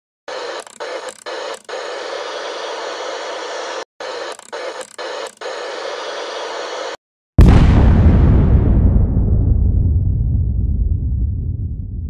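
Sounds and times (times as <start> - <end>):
static-like electronic noise: 0.3 - 7.0.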